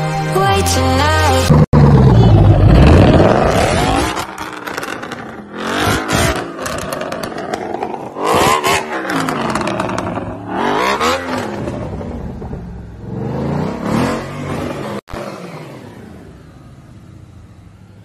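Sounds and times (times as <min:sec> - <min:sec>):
car engine revving: 0:01.3 - 0:18.0.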